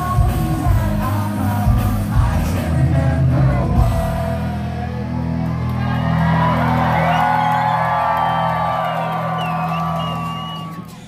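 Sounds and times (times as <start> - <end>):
distorted live rock band: 0.0 - 11.0
crowd whooping and shouting: 3.7 - 11.0.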